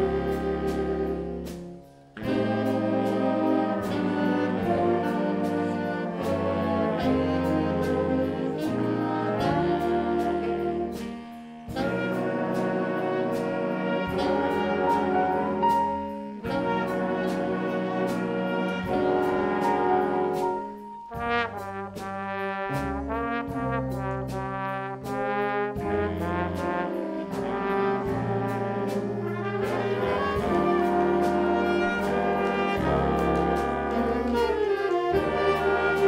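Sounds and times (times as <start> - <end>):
jazz band playing: 0.0 - 36.0
trombone solo: 0.0 - 36.0.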